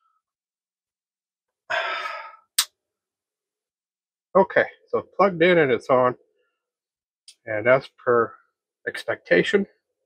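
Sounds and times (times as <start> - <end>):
man sighing: 1.7 - 2.5.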